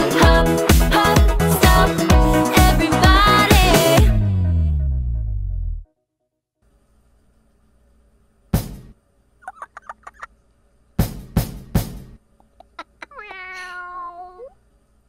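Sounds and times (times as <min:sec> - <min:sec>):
bass drum thumps: 0:02.6 - 0:05.8, 0:08.6 - 0:08.9, 0:11.0 - 0:12.2
cat meowing: 0:13.0 - 0:14.6.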